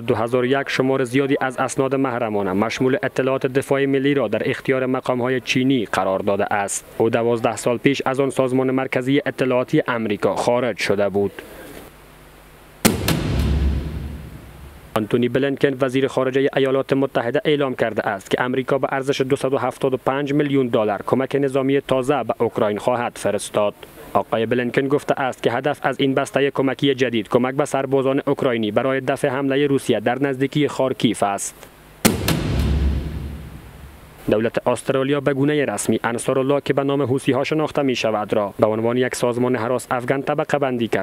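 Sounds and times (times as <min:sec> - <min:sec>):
sharp hits: 0:12.8 - 0:15.0, 0:32.0 - 0:34.3
deep low boom: 0:12.9 - 0:15.0, 0:32.1 - 0:34.3.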